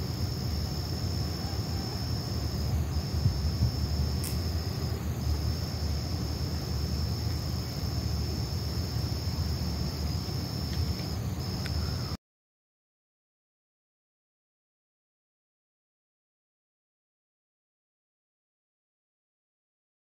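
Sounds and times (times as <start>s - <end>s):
crickets trilling: 0.0s - 12.2s
single click: 4.2s - 4.5s.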